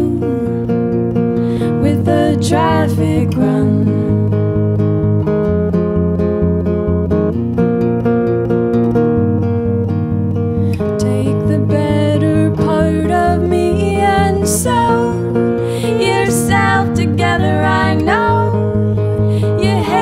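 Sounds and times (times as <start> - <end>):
acoustic guitars strumming: 0.0 - 20.0.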